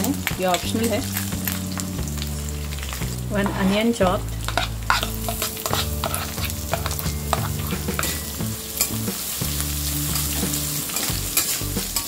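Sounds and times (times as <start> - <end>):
hot oil sizzling and crackling: 0.0 - 12.0.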